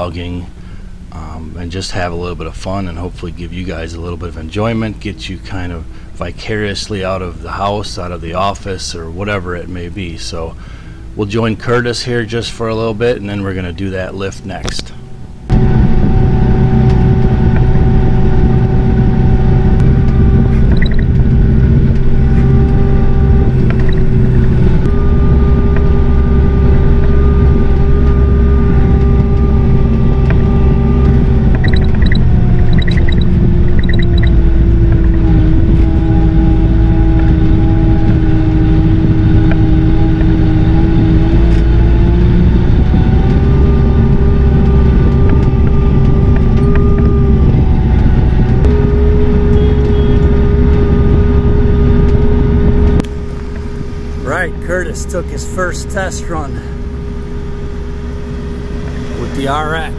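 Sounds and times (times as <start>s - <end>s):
tractor diesel engine running: 0.0s - 59.9s
high beeps: 20.6s - 21.2s, 31.6s - 34.4s.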